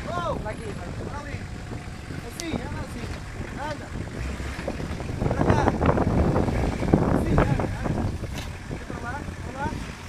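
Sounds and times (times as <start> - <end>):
truck engine running under load: 0.0 - 10.0
wind buffeting microphone: 0.0 - 10.0.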